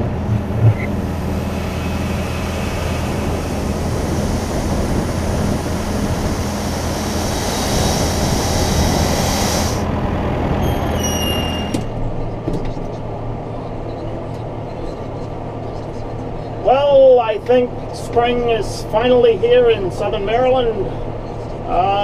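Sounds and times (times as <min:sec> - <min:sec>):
engine humming: 0:00.0 - 0:16.6
brief high-pitched squeal: 0:10.6 - 0:12.0.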